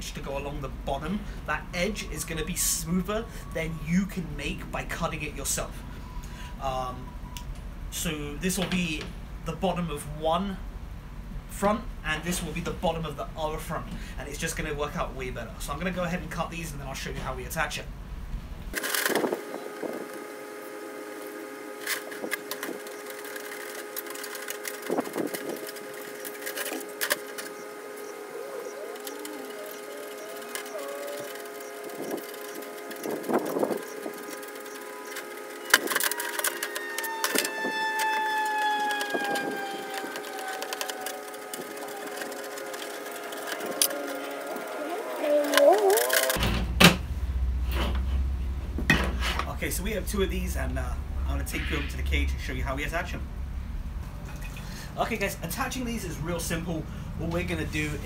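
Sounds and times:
steady hum of held tones: 0.0s - 46.5s
wire mesh rattling: 22.0s - 46.6s.

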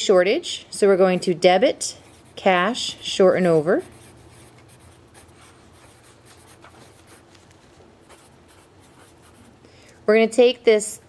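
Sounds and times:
low steady hum: 0.0s - 11.0s
pencil scratching on paper: 2.0s - 7.4s, 8.0s - 9.5s.

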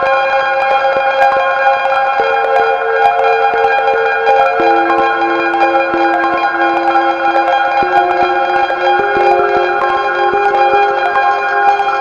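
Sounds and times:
ambient synthesizer music: 2.2s - 12.0s.

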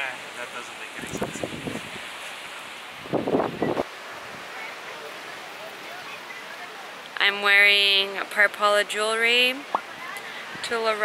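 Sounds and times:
surf: 0.0s - 11.0s
wind buffeting microphone: 1.0s - 2.2s, 2.9s - 4.5s.

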